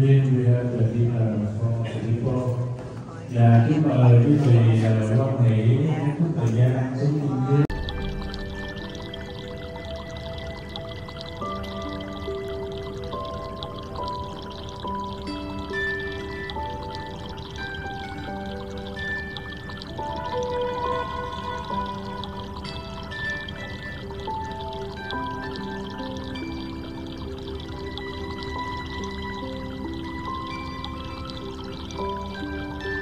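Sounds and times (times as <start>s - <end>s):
slow instrumental music: 7.5s - 33.0s
water-like rushing noise: 7.7s - 33.0s.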